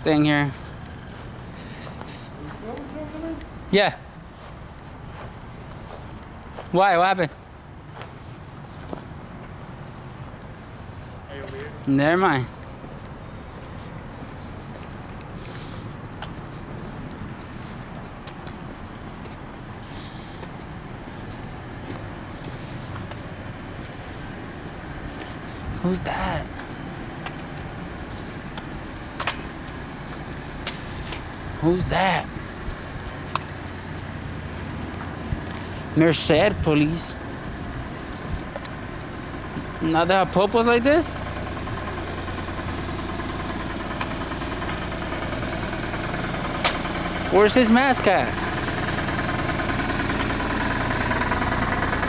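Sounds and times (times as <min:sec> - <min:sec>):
small engine idling: 0:00.0 - 0:09.0, 0:09.7 - 0:52.0
distant traffic rumble: 0:00.0 - 0:52.0.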